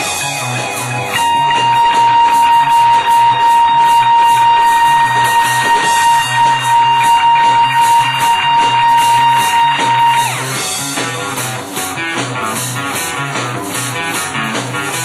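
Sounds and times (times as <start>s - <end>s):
cymbals beat: 0.0s - 12.8s
guitar holding a high note: 0.0s - 13.2s.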